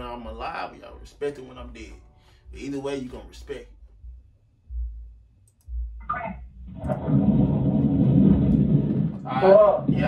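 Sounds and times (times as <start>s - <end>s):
dull low thumps: 3.7s - 10.0s.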